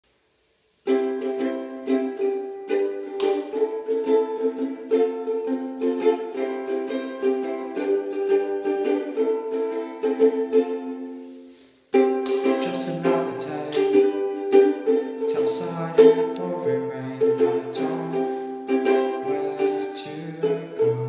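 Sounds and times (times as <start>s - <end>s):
ukulele plucked chords: 0.8s - 21.0s.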